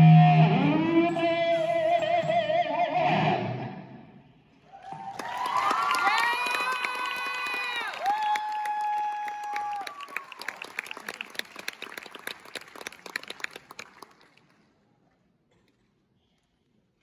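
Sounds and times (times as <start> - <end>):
high held guitar tone: 0.0 - 4.0
audience cheering and applauding: 4.7 - 14.4.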